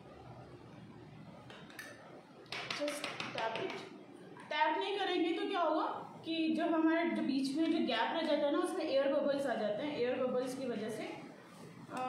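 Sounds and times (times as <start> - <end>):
cup tapping on tabletop: 2.5 - 3.9.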